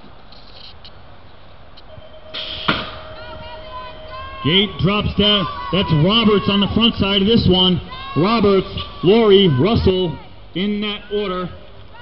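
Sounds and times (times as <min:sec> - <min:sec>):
steady gate tone: 0:01.9 - 0:09.4
rush of noise: 0:02.0 - 0:10.4
gate slamming down: 0:02.3 - 0:06.5.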